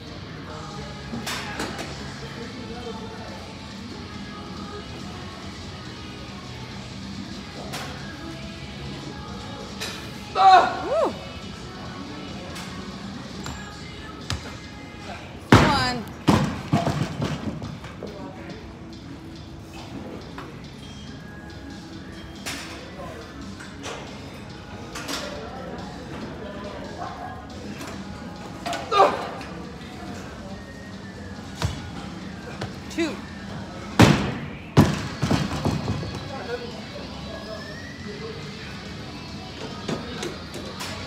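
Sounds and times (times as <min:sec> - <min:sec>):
background music: 0:00.0 - 0:41.0.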